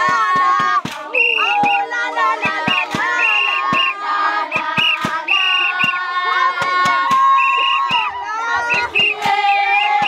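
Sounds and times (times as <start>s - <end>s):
group of women singing: 0.0s - 10.0s
hands clapping: 0.0s - 10.0s.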